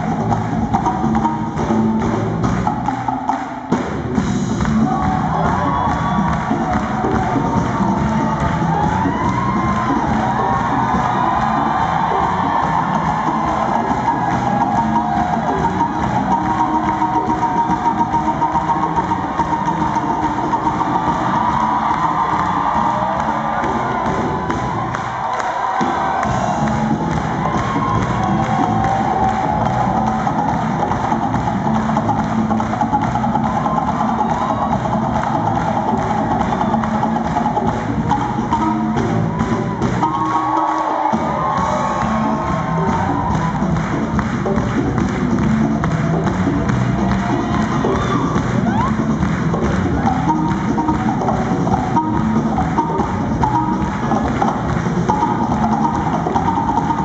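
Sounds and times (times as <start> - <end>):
crowd cheering and clapping: 0.0 - 57.0
live band music: 0.0 - 57.0.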